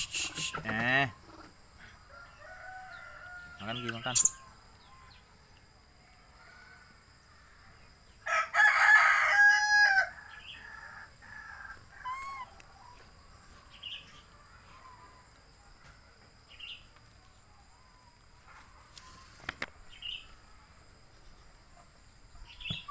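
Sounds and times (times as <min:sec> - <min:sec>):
rooster crowing: 0:01.9 - 0:04.0, 0:08.2 - 0:13.0.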